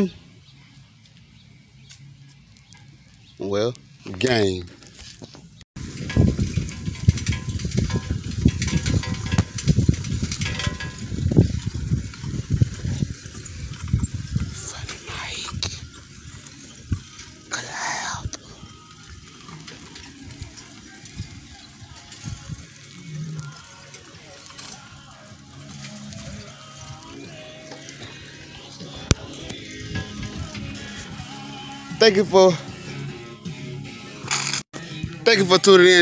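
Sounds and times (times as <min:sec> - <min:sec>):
handling rumble: 0:00.0 - 0:34.2
wind buffeting microphone: 0:05.8 - 0:23.3, 0:28.1 - 0:31.4.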